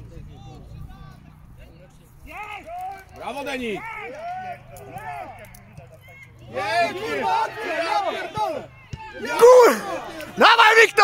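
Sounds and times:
men shouting: 0:02.4 - 0:11.0.

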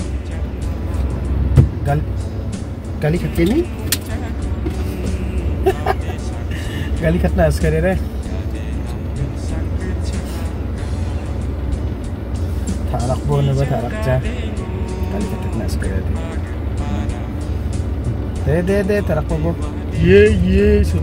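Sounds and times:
car cabin rumble: 0:00.0 - 0:21.0
music playing: 0:00.0 - 0:21.0
man's voice: 0:01.5 - 0:11.4, 0:12.7 - 0:21.0.

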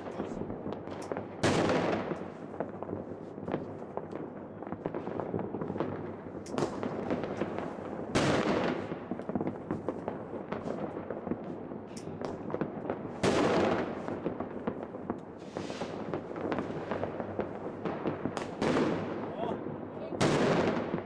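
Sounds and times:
fireworks popping and banging: 0:00.0 - 0:21.0
loud firework blasts: 0:00.0 - 0:21.0.

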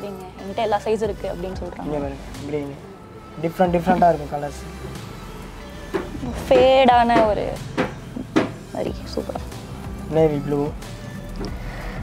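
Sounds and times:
sharp knocks and clicks: 0:06.0 - 0:08.6.

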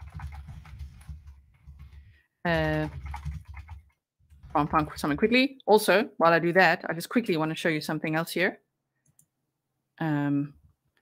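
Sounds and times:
typing on computer keyboard: 0:00.0 - 0:05.2.

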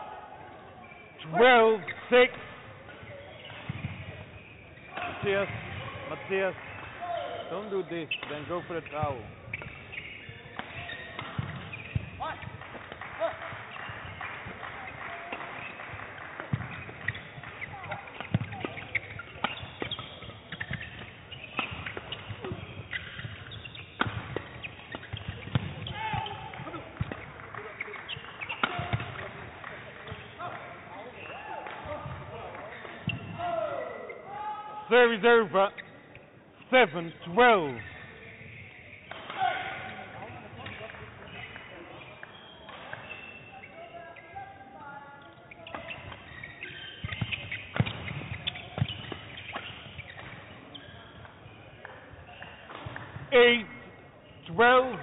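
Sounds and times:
voices in hall: 0:00.0 - 0:21.5, 0:24.6 - 0:55.0
footwork on court: 0:00.0 - 0:55.0
racket hitting shuttlecock: 0:09.4 - 0:30.7, 0:39.0 - 0:43.3, 0:45.6 - 0:50.6.

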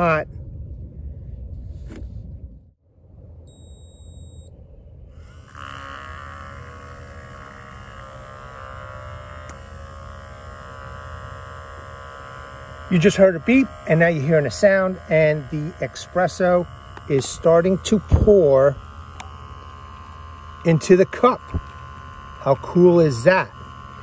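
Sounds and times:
electronic beep: 0:03.5 - 0:04.5
espresso machine pump buzzing: 0:05.0 - 0:24.0.

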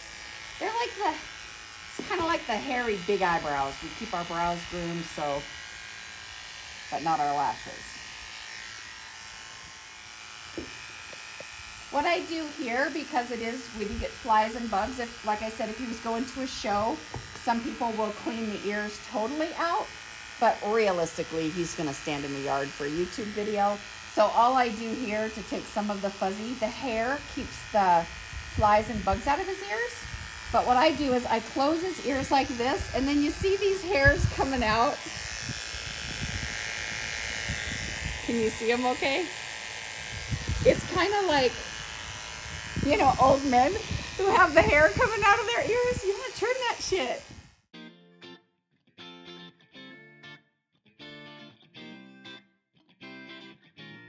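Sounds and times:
horse clippers buzzing: 0:00.0 - 0:47.5.

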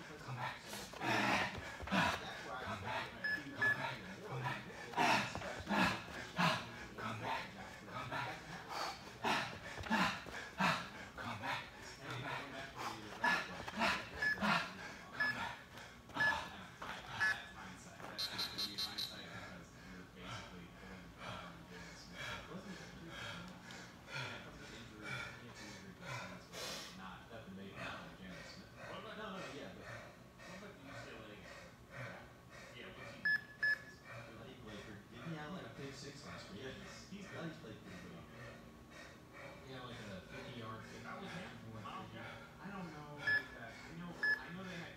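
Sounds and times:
person panting heavily: 0:00.0 - 0:18.0, 0:19.2 - 0:27.0, 0:27.7 - 0:33.2, 0:34.0 - 0:44.9
interval timer beeps: 0:33.3 - 0:33.9.

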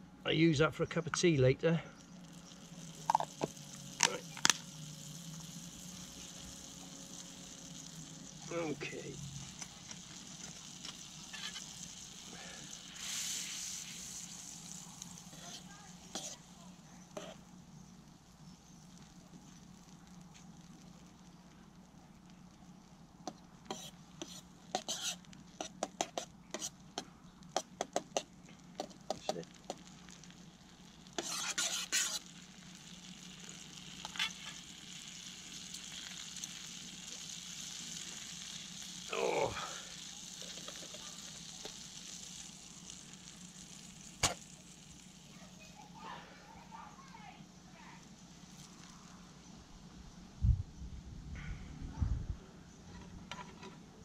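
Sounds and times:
butter sizzling in a frying pan: 0:01.0 - 0:50.4
fork tapping and scraping a pan: 0:23.3 - 0:29.8.

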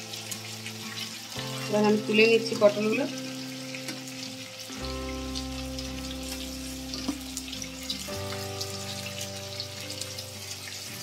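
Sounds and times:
soft background music: 0:00.0 - 0:11.0
vegetables sizzling in hot oil: 0:00.0 - 0:11.0
oil popping: 0:06.2 - 0:08.5.

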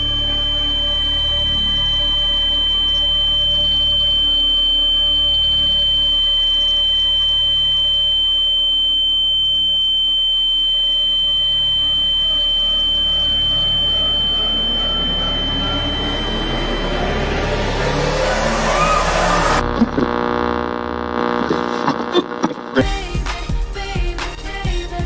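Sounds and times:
low drone: 0:00.0 - 0:07.5, 0:11.1 - 0:21.8
high-pitched ringing tone: 0:00.0 - 0:20.9
held music chords: 0:11.0 - 0:25.0
rising swell: 0:12.2 - 0:19.6.

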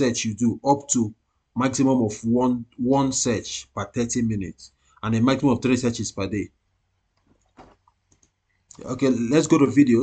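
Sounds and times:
faint computer mouse clicks: 0:07.2 - 0:08.8.

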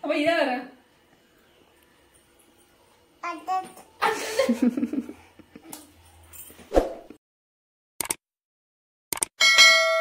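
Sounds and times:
bright bell ding: 0:09.4 - 0:10.0.

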